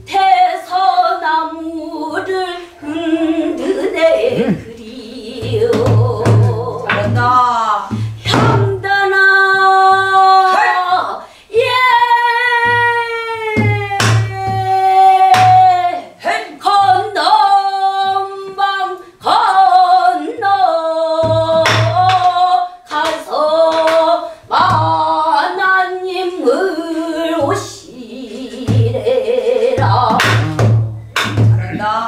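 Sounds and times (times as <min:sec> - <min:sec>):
woman singing with vibrato: 0:00.0 - 0:32.0
barrel drum thuds and knocks: 0:29.8 - 0:31.8.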